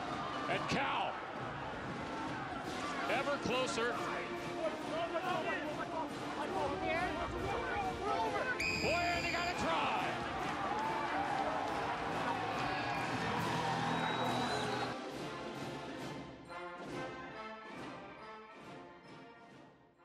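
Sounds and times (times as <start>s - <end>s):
crowd cheering and shouting: 0.0s - 4.4s, 5.0s - 15.0s
orchestral music: 2.6s - 20.0s
referee's whistle blast: 8.6s - 9.8s, 13.7s - 14.9s.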